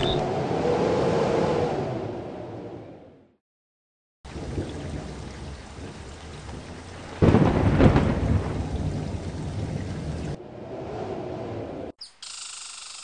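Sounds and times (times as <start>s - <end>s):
steady rain: 4.3s - 11.8s
thunderclap rumbling: 4.3s - 11.9s.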